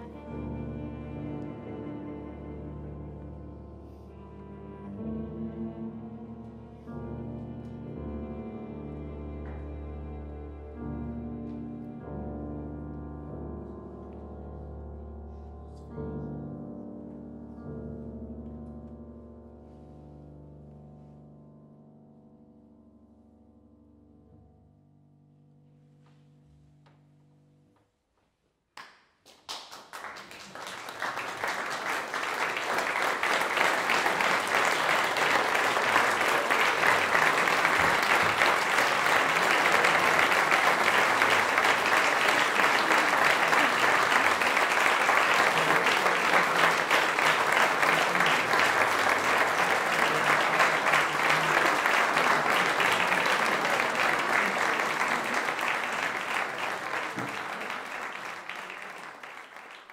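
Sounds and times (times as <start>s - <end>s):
audience applause: 0.0s - 1.2s, 29.3s - 59.9s.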